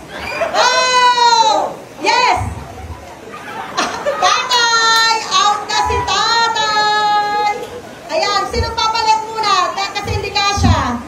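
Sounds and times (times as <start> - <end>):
children shouting: 0.0 - 2.2, 3.3 - 8.5.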